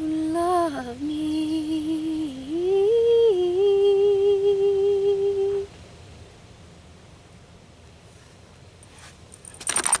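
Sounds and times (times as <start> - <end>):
faint steady background noise: 0.0 - 10.0
camera clicks and rattles: 9.4 - 10.0.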